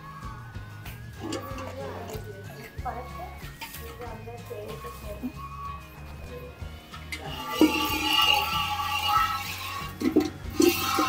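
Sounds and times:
background music with held tones: 0:00.0 - 0:11.0
milk squirting into steel bucket: 0:01.2 - 0:02.3, 0:07.1 - 0:11.0.

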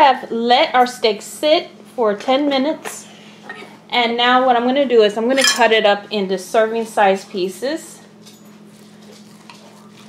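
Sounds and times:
cutlery clicking on a plate: 0:05.4 - 0:05.7
knife and fork cutting steak: 0:08.6 - 0:10.0.

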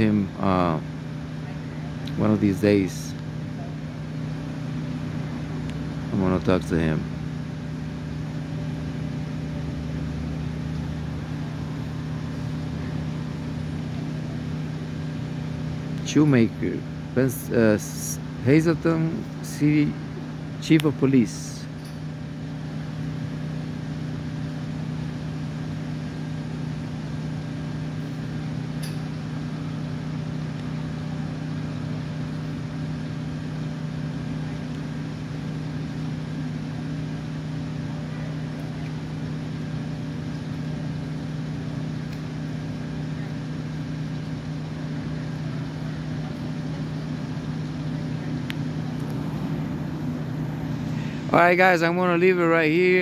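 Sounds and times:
truck engine idling: 0:00.0 - 0:53.0.

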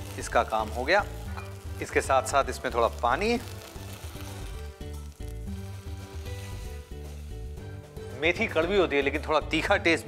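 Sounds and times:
food sizzling in a pot: 0:00.0 - 0:08.8
background music with bass: 0:00.0 - 0:10.0.

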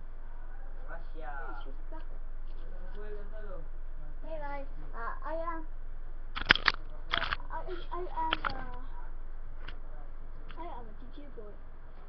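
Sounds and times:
low background hum: 0:00.0 - 0:12.0
child's voice: 0:04.3 - 0:05.7, 0:07.4 - 0:09.0, 0:10.6 - 0:11.6
sharp click: 0:06.4 - 0:07.4.

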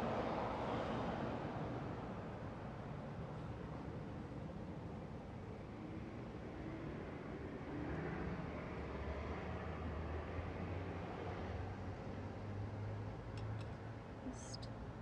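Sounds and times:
street traffic engine hum: 0:00.0 - 0:15.0.

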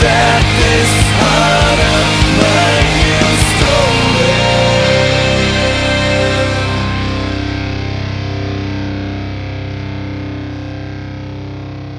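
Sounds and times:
distorted electric guitar chord: 0:00.0 - 0:11.9.

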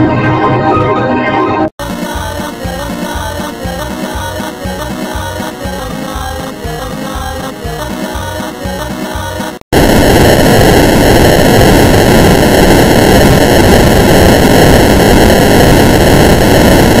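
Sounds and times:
layered music: 0:01.8 - 0:09.6
harsh distorted static noise: 0:01.8 - 0:17.0.

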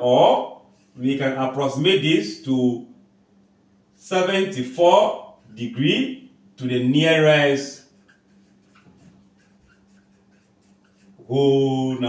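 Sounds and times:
faint steady hum: 0:00.0 - 0:12.0
marker pen writing on whiteboard: 0:07.4 - 0:11.4.

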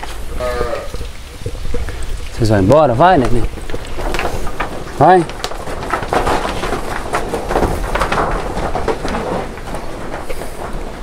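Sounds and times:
hooves knocking on boards: 0:00.0 - 0:11.0.

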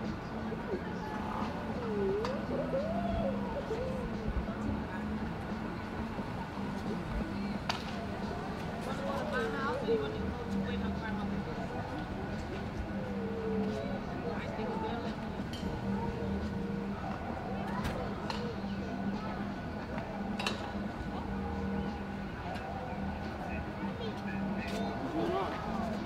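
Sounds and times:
people talking in background: 0:00.0 - 0:26.0.

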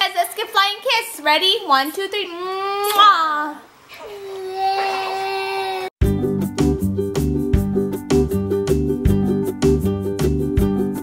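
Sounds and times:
child whining cry: 0:02.3 - 0:03.2, 0:04.0 - 0:06.0.

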